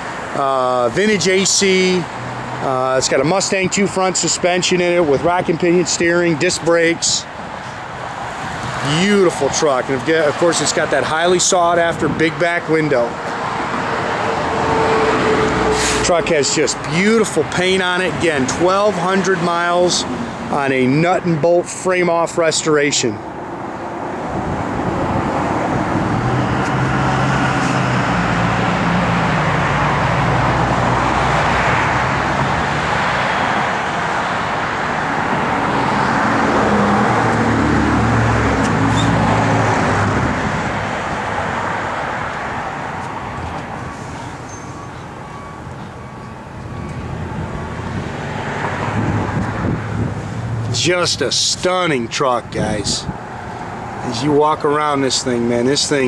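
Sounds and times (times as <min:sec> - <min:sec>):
road traffic: 0:00.0 - 0:56.0.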